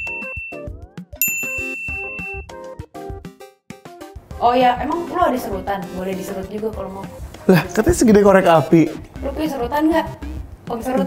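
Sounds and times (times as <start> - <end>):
bell-like ding: 0.0 - 2.5
light background music: 0.0 - 11.0.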